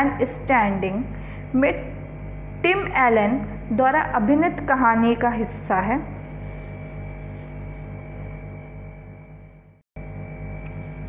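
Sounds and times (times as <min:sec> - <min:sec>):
low electrical hum: 0:00.0 - 0:11.0
pulsing buzz: 0:00.0 - 0:11.0.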